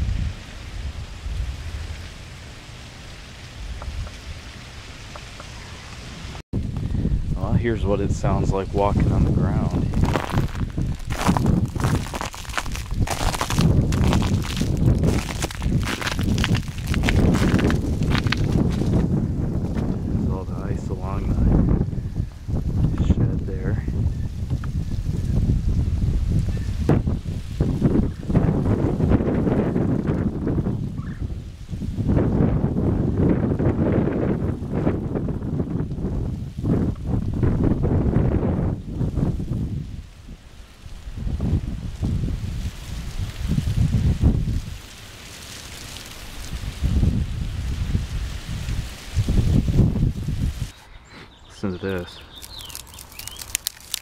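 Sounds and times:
wind buffeting microphone: 0:00.0 - 0:02.2, 0:03.6 - 0:44.9, 0:46.3 - 0:54.0.

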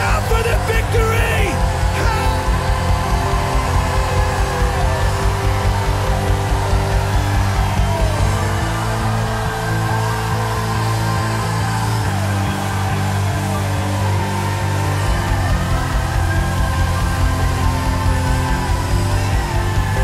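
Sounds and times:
band playing heavy rock music: 0:00.0 - 0:20.0.

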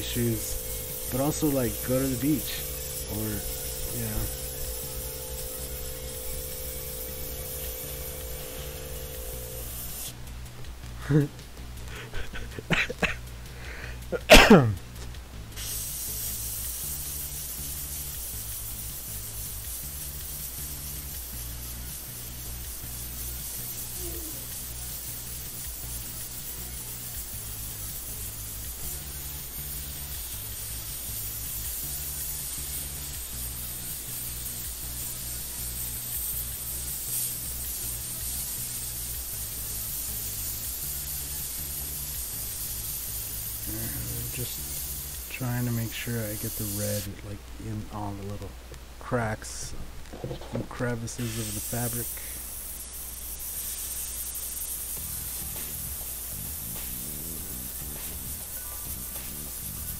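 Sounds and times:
airbrush spraying hiss: 0:00.0 - 0:14.7, 0:15.4 - 0:47.2, 0:49.4 - 0:59.9
background music with bass: 0:00.0 - 0:52.4, 0:54.9 - 0:59.9.

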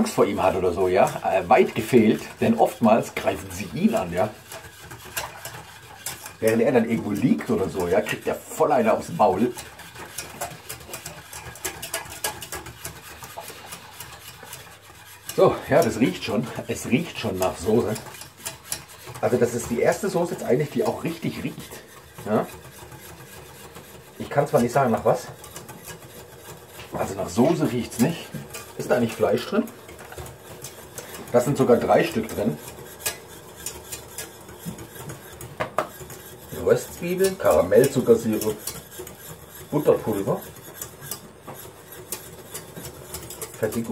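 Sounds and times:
utensil stirring and scraping pot: 0:00.0 - 0:43.9.

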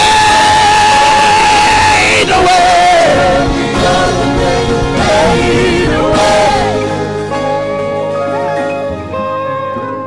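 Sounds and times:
live gospel worship music: 0:00.0 - 0:10.0.

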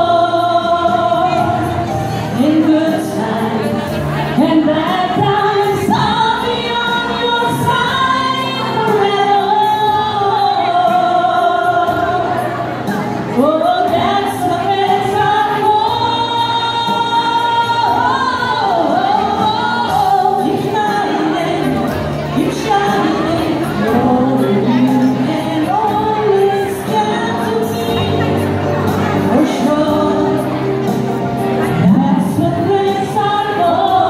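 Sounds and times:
musical accompaniment: 0:00.0 - 0:34.0
women singing: 0:00.0 - 0:34.0.

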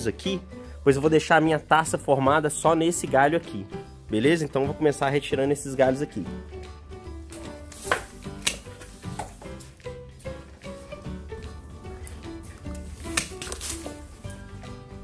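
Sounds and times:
background music: 0:00.0 - 0:15.0
pruning shears snipping branch: 0:07.4 - 0:09.3, 0:12.6 - 0:14.0.

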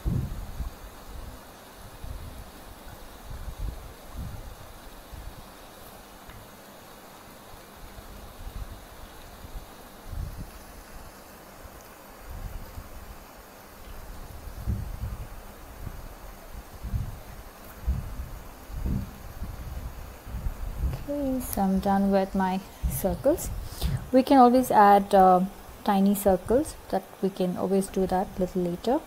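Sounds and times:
faint hiss: 0:00.0 - 0:29.0
soft low thuds: 0:17.8 - 0:21.1.

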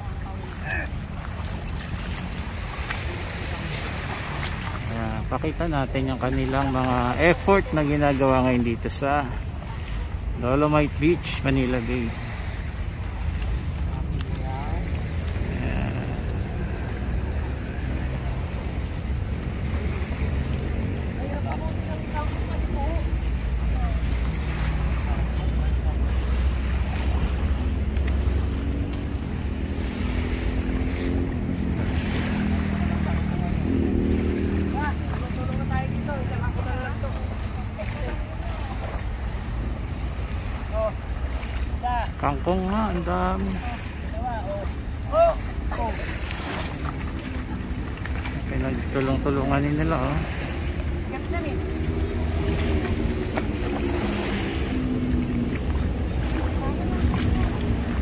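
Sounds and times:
water washing in shallow bay: 0:00.0 - 0:58.0
faint voices: 0:13.8 - 0:19.1.

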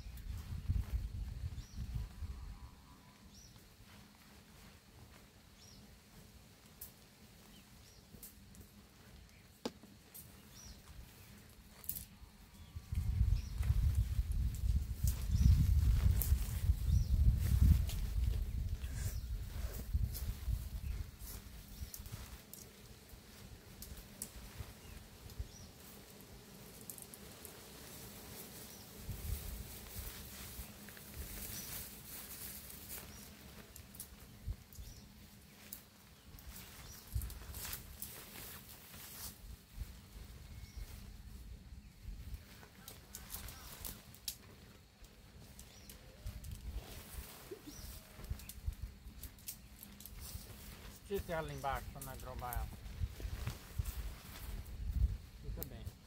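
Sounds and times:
tent fabric rustling: 0:03.3 - 0:56.0.

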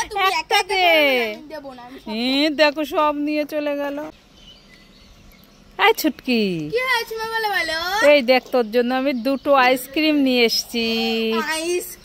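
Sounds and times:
woman's voice: 0:00.0 - 0:04.2, 0:05.8 - 0:06.9, 0:07.8 - 0:12.0
faint bird chirps: 0:04.1 - 0:06.5.

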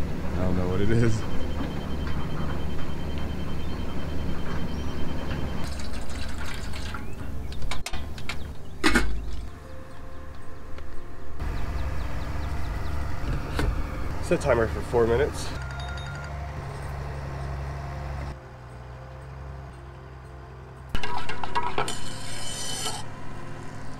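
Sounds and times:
sharp ringing clink: 0:15.6 - 0:17.0.

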